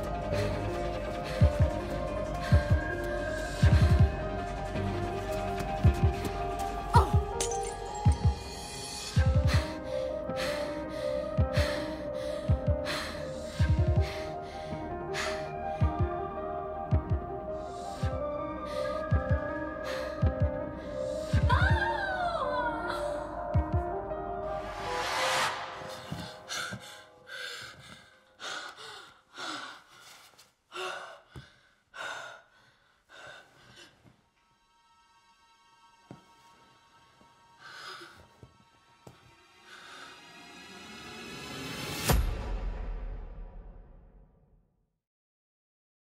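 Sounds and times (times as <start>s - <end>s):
tense film score: 0.0s - 44.6s
deep heartbeat thuds: 1.3s - 4.4s, 9.2s - 9.9s, 11.3s - 11.8s, 12.4s - 14.4s, 15.8s - 16.3s, 16.9s - 17.4s, 19.0s - 19.6s, 20.2s - 22.0s, 23.5s - 24.0s.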